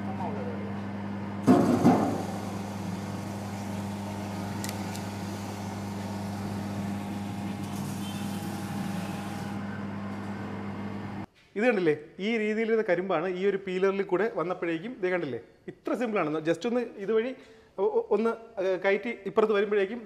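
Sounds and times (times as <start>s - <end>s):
electric juicer humming: 1.4s - 11.3s.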